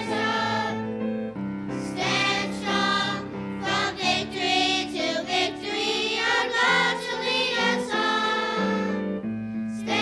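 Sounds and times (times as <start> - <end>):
children's choir singing: 0.0 - 0.9, 1.8 - 9.1, 9.8 - 10.0.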